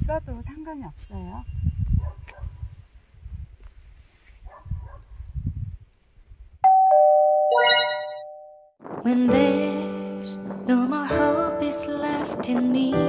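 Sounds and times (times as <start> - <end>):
doorbell ding-dong chime: 6.6 - 8.6.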